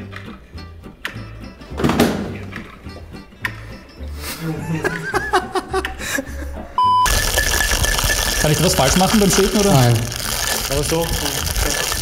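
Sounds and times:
short electronic beep: 6.8s - 8.5s.

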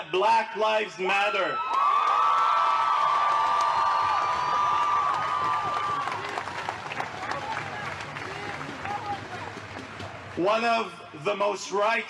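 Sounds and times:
crowd cheering: 1.4s - 10.5s
high whoops: 1.5s - 6.8s.

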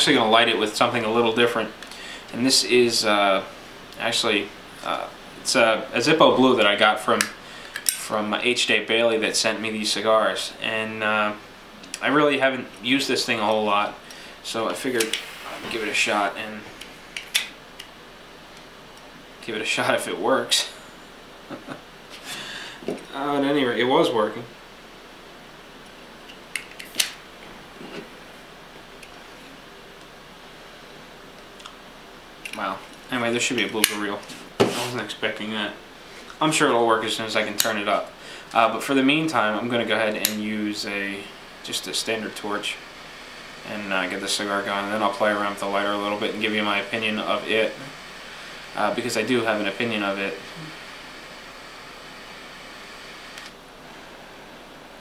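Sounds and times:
low hiss of room noise: 0.0s - 55.0s
torch lighter flame hissing: 13.9s - 17.6s, 33.5s - 35.2s, 37.3s - 54.2s.

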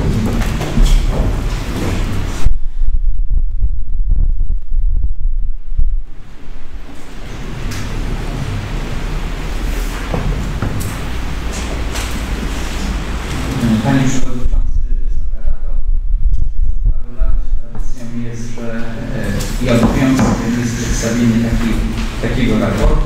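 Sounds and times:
microphone thumps: 0.0s - 6.9s, 14.4s - 18.0s
microphone handling rumble: 0.0s - 23.0s.

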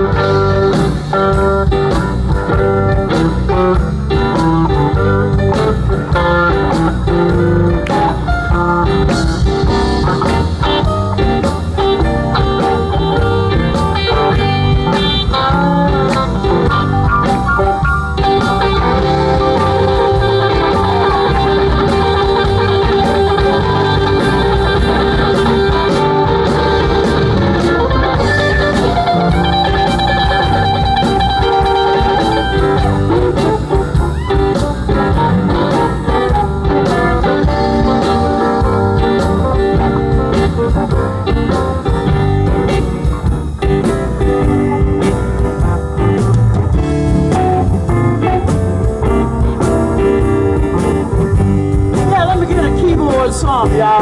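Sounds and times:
bass guitar: 0.0s - 54.0s
drum kit beat: 0.0s - 54.0s
electric guitars: 0.0s - 54.0s.

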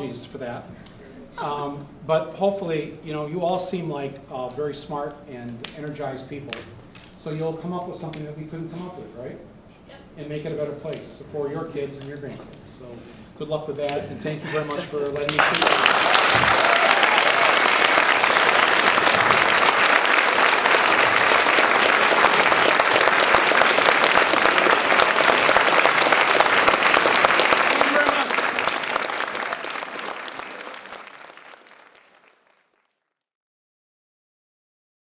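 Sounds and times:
audience applauding: 15.1s - 33.0s.

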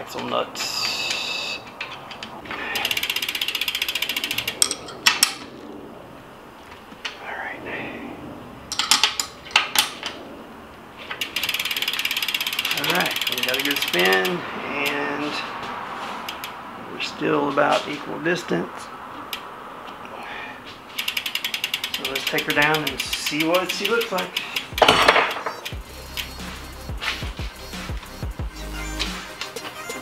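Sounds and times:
ratchet wrench clicking: 0.8s - 5.4s, 11.1s - 15.0s, 16.2s - 16.6s, 20.9s - 26.8s
sharp metal knocks: 24.7s - 25.6s.

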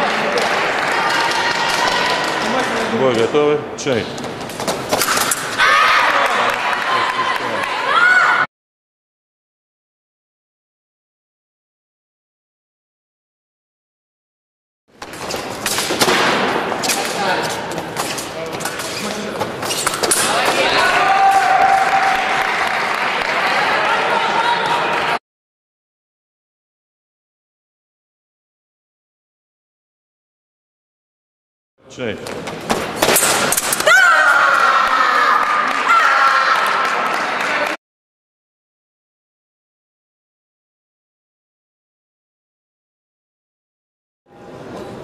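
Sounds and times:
people clapping: 0.0s - 2.9s, 5.7s - 8.3s, 20.7s - 25.2s, 34.3s - 37.8s
crowd voices: 0.0s - 8.5s, 15.5s - 25.2s.

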